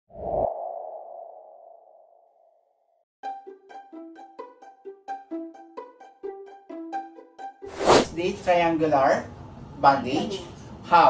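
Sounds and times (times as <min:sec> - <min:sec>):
light music of quick notes: 0:03.2 - 0:08.5.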